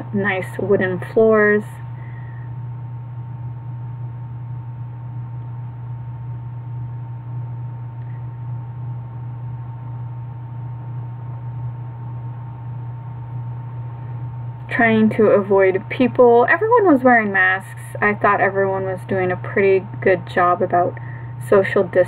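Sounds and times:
low electrical hum: 0.0 - 22.0
thin high whine: 0.0 - 22.0.

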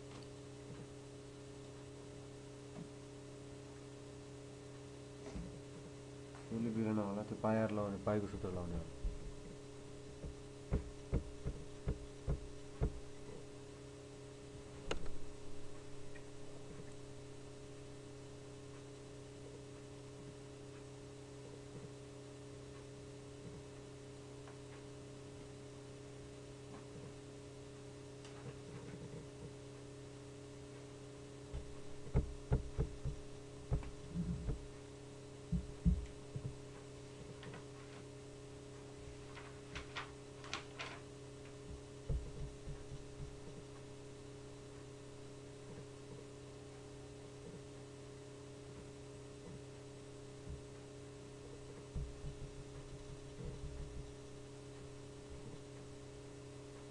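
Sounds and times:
steady electrical hum: 0.0 - 56.9
soft low thumps: 8.7 - 13.5, 31.5 - 36.8, 41.7 - 44.0, 51.6 - 54.4
low thud: 10.2 - 13.0, 31.6 - 34.7.

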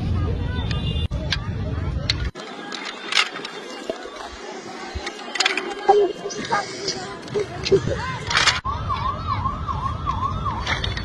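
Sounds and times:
siren wailing: 8.6 - 11.0.

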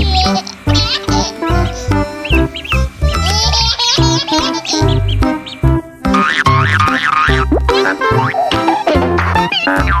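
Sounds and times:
cartoon boing effect: 6.1 - 10.0.

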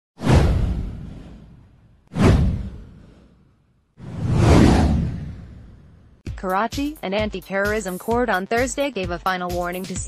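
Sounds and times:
whoosh with deep rumble: 0.2 - 6.2.

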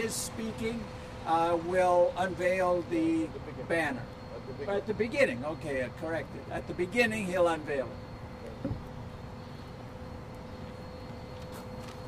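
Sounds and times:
faint steady hum: 0.0 - 12.0
low city background rumble: 0.0 - 12.0.

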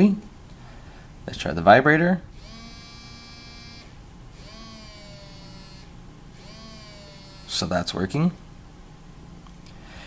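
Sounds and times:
phone vibrating on wooden table: 2.4 - 7.6.

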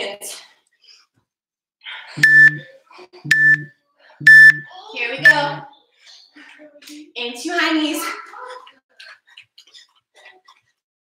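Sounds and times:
timer short beeps: 2.2 - 2.7, 3.3 - 5.6.

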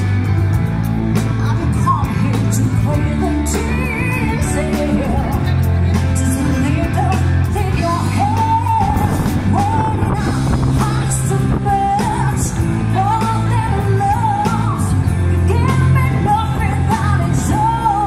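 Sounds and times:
bass guitar: 0.0 - 18.0
electric guitar: 0.0 - 18.0
woman singing into microphone: 1.2 - 18.0.

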